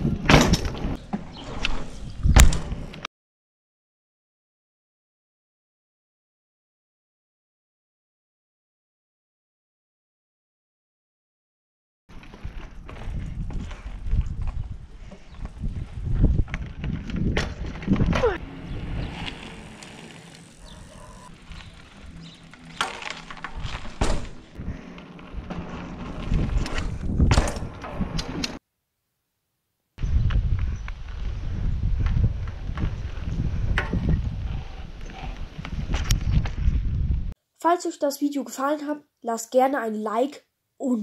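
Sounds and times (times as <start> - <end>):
bicycle knocks and rattles: 0.0 - 1.4, 12.1 - 24.6, 25.3 - 28.4
bicycle tyres rumbling on paving: 12.1 - 28.1, 30.0 - 37.3.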